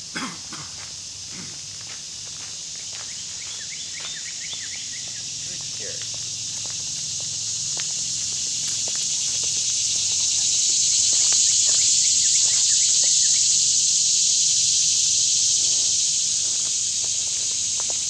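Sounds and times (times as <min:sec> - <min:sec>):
insect buzz: 0:00.0 - 0:18.0
footsteps on gravel: 0:00.7 - 0:11.9, 0:15.5 - 0:18.0.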